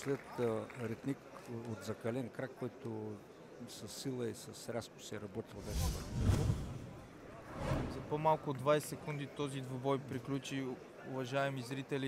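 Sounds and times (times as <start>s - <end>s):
transition swoosh: 5.5s - 8.2s
swish: 5.5s - 8.3s.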